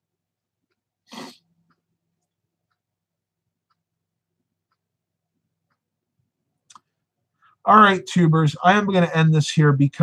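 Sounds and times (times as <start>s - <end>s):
short burst of breath: 1.1s - 1.4s.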